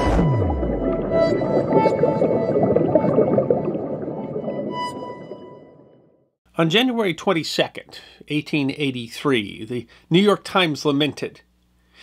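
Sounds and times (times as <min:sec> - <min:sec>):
underwater churning rumble: 0:00.0 - 0:05.4
intro music with held tones: 0:00.0 - 0:06.2.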